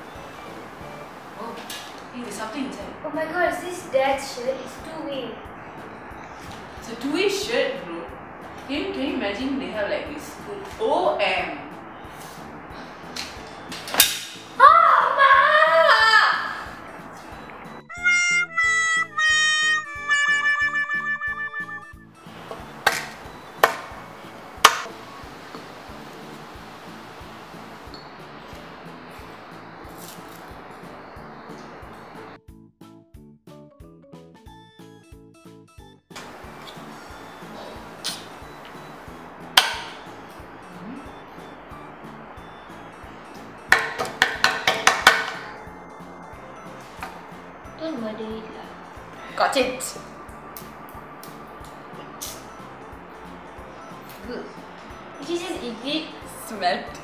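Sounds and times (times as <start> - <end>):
background music with steady beat: 15.9 - 57.0
falling pitched notes effect: 17.8 - 22.1.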